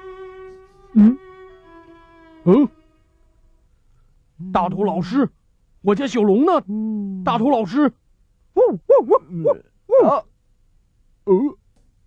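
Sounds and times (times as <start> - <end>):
bowed string music: 0.0 - 5.2.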